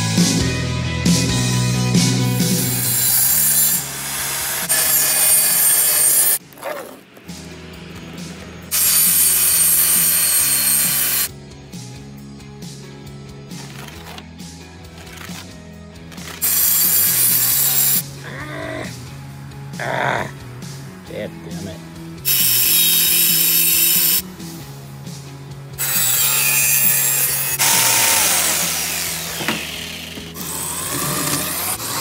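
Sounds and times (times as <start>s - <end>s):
rock music: 0.0s - 32.0s
table saw cutting boards: 2.4s - 6.4s, 8.7s - 11.3s, 16.2s - 18.0s, 22.3s - 24.2s, 25.8s - 32.0s.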